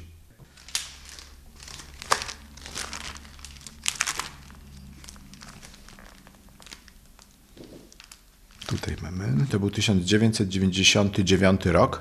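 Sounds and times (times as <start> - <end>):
low steady hum: 0.0 - 12.0
paper rustling and crinkling: 0.4 - 9.6.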